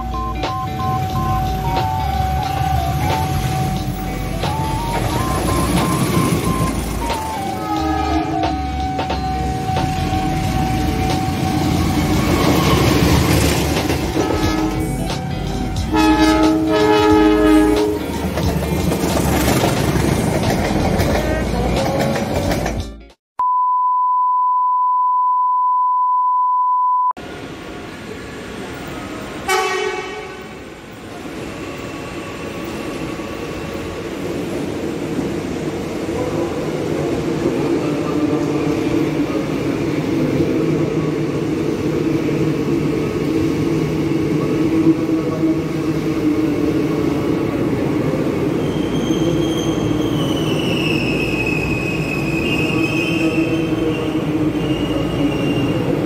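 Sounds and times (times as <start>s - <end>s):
steady electronic beep tone: 0.0s - 7.5s, 23.4s - 27.2s
electric trains rumbling past: 0.0s - 23.0s, 27.2s - 56.0s
train horn blast: 7.6s - 8.6s, 14.1s - 18.2s, 29.5s - 30.6s
high squeal sliding downward: 48.5s - 56.0s.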